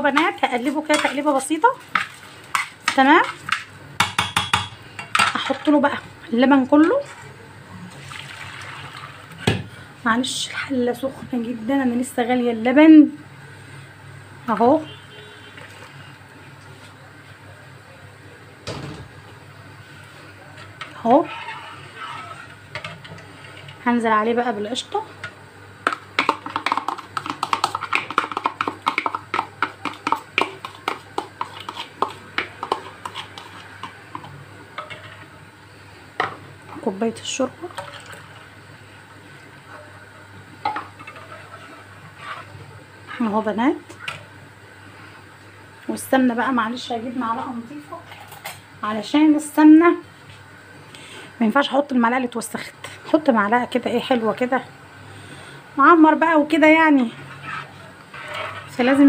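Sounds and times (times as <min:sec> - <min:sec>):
spoon stirring in a pan: 0:00.0 - 0:05.8, 0:19.9 - 0:35.4, 0:36.1 - 0:38.6, 0:39.6 - 0:44.3, 0:56.2 - 0:59.0.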